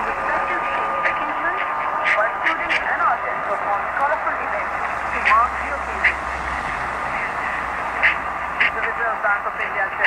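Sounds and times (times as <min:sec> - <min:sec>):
radio crackles: 0:00.0 - 0:10.0
radio hiss and static: 0:00.0 - 0:10.0
faint voice on am radio: 0:08.0 - 0:10.0.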